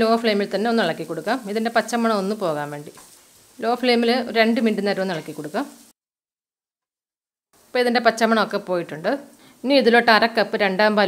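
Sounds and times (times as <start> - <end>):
woman talking: 0.0 - 3.0, 3.6 - 5.7, 7.8 - 11.0
wooden spatula stirring in pan: 0.0 - 5.9
onions sizzling in oil: 0.0 - 6.0, 7.6 - 11.0.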